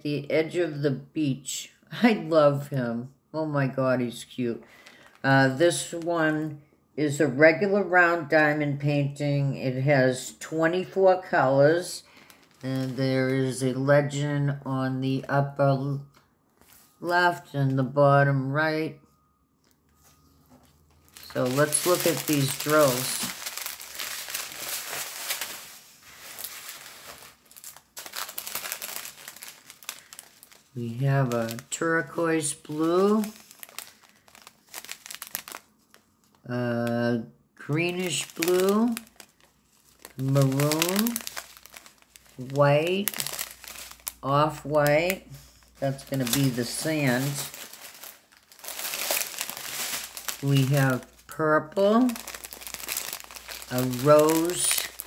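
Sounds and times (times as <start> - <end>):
plastic bags crinkling: 4.6 - 6.1, 10.8 - 14.2, 20.0 - 55.0.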